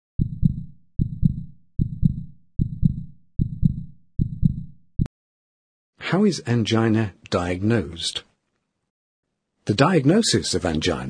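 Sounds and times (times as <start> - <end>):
heartbeat: 0.2 - 5.1.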